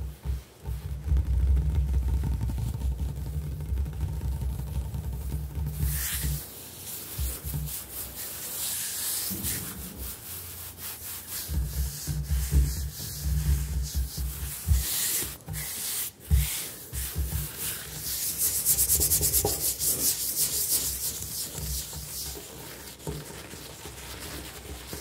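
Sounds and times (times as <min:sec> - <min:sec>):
hands rubbing on countertop: 0:00.0 - 0:25.0.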